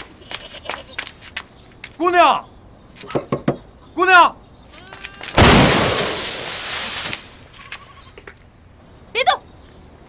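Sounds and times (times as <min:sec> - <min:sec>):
crash of straw and debris: 0:05.4 - 0:07.4.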